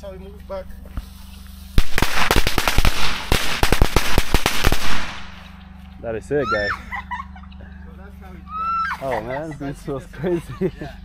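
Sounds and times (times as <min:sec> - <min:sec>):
firecrackers crackling: 0:00.9 - 0:05.6.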